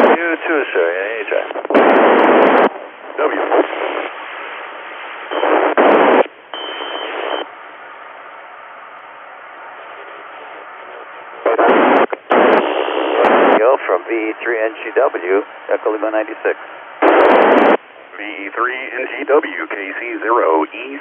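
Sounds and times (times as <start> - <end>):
garbled radio transmissions: 0.0 - 7.5, 9.6 - 21.0
radio static hiss: 0.0 - 7.5, 9.6 - 21.0.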